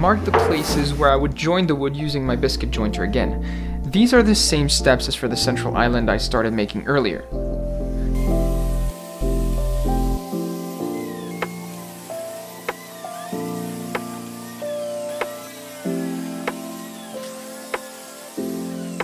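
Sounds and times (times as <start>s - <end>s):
background music low notes: 0.0s - 19.0s.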